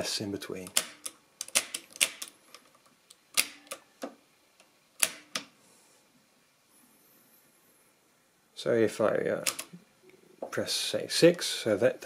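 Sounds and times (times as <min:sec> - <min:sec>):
mechanical calculator keys clicking: 0:00.7 - 0:02.6.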